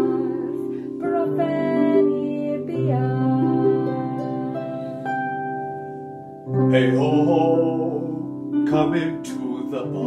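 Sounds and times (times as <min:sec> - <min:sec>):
woman singing: 0:00.0 - 0:05.3
harp playing chords: 0:00.0 - 0:10.0.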